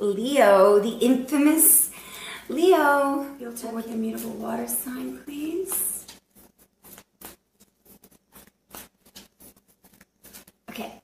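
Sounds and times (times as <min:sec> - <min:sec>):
cards being shuffled by hand: 0:05.6 - 0:11.0.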